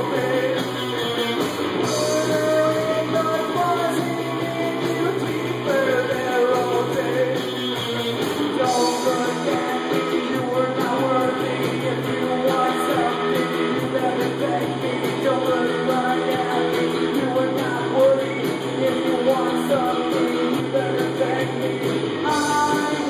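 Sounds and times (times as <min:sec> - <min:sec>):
bass guitar: 0:00.0 - 0:23.0
drum kit beat: 0:00.0 - 0:23.0
electric guitar: 0:00.0 - 0:23.0
man singing: 0:00.0 - 0:23.0.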